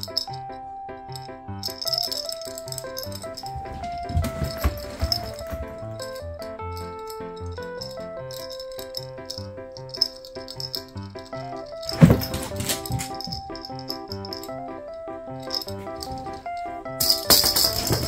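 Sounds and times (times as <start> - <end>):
light plucky background music: 0.0 - 18.0
plastic rattle ball rolling on floor: 1.6 - 14.6, 15.4 - 18.0.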